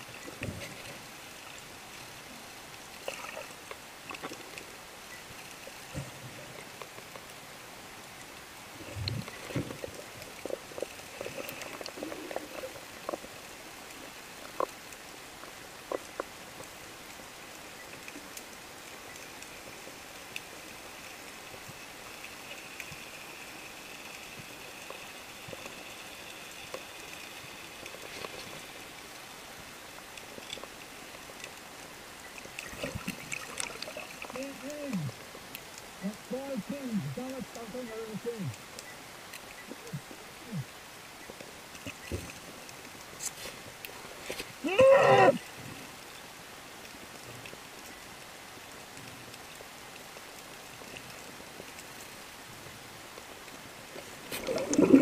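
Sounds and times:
low water rush: 0:00.0 - 0:55.0
muffled voice-like sound: 0:34.3 - 0:35.1, 0:36.0 - 0:38.6.

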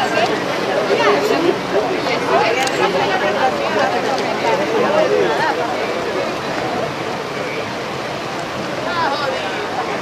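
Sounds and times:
choppy sea water rushing: 0:00.0 - 0:10.0.

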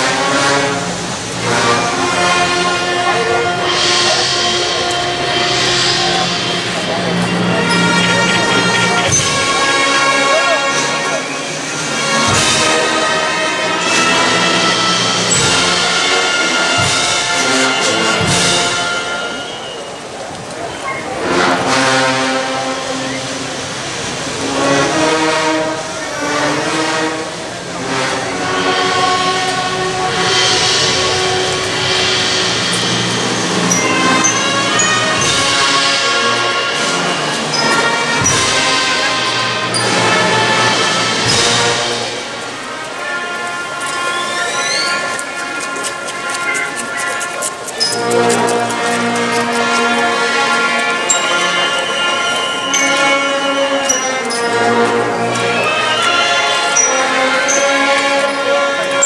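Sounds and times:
rushing hiss: 0:00.0 - 0:58.8
brass band playing funeral march: 0:00.0 - 0:59.0.

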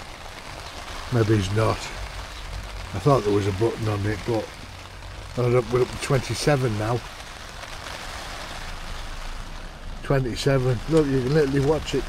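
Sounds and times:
rain on tent fabric: 0:00.0 - 0:12.0.

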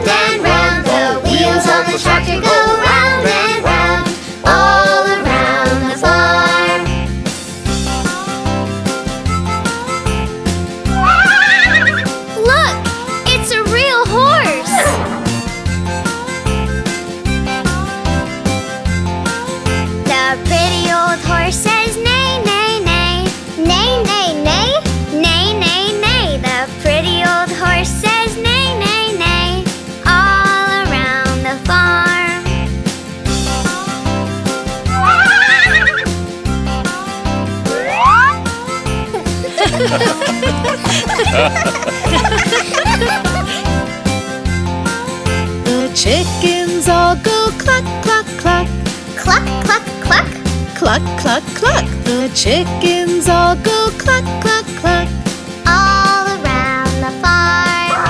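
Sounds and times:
children's song music: 0:00.0 - 0:58.0
horse whinnying: 0:10.9 - 0:12.2, 0:14.6 - 0:15.4, 0:34.9 - 0:36.2
quick rising glide: 0:14.6 - 0:15.6
warbling sound effect: 0:14.7 - 0:15.4, 0:34.9 - 0:36.0, 0:37.7 - 0:38.4.

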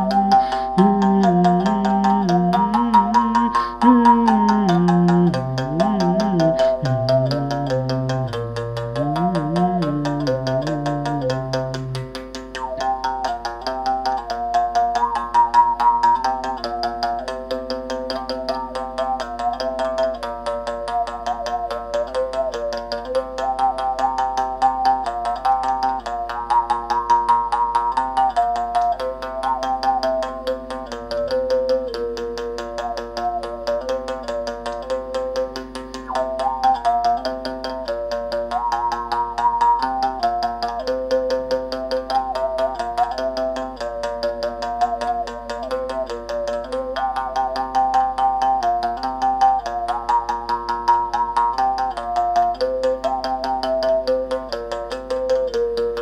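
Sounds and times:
overtone melody: 0:00.0 - 0:17.2, 0:35.9 - 0:50.6
mouth bow string tapped with stick: 0:00.0 - 0:56.0.

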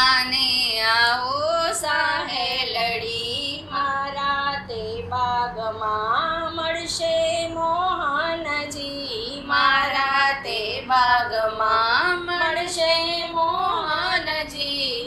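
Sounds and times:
woman singing devotional song: 0:00.0 - 0:15.0.

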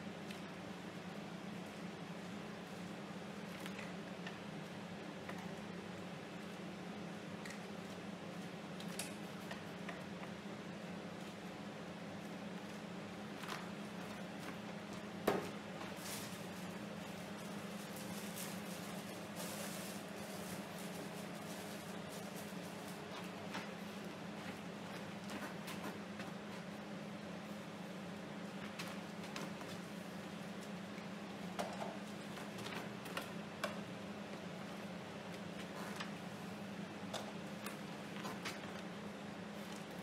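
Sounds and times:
low hum of room tone: 0:00.0 - 0:40.0.

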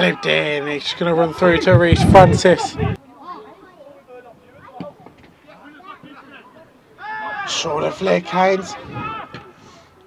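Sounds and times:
distant players shouting: 0:05.6 - 0:09.6.

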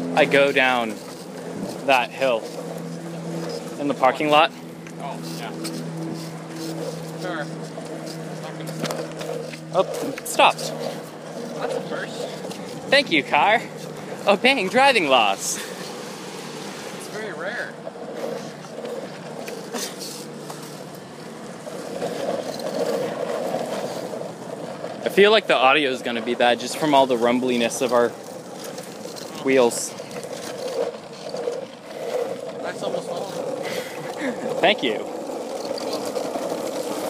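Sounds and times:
skateboard wheels rolling on asphalt: 0:00.0 - 0:37.0.

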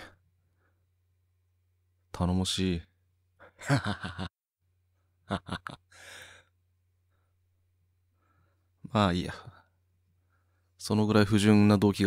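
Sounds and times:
person laughing: 0:03.5 - 0:04.3, 0:05.3 - 0:05.9.

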